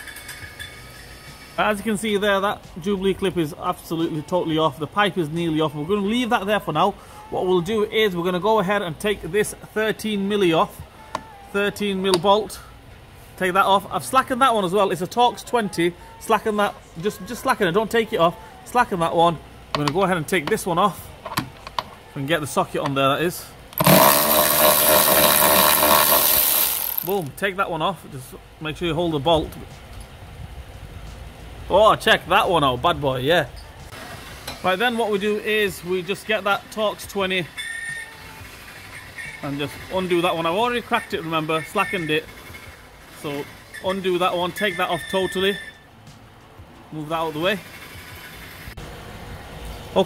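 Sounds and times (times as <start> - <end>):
electric ratchet motor whine: 23.8 - 27.3.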